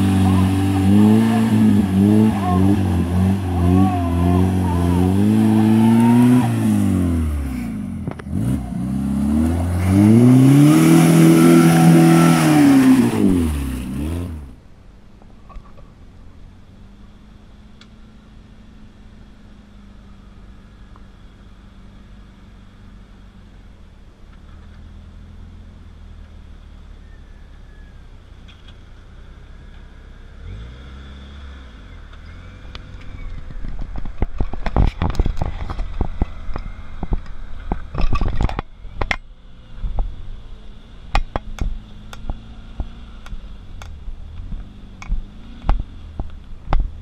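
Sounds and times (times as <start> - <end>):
off-road vehicle engine revving: 0.0 - 14.6, 24.4 - 47.0.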